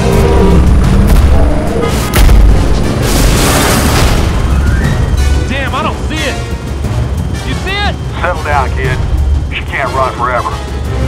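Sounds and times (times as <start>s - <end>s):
dramatic music: 0.0s - 11.0s
deep boom: 0.6s - 5.0s.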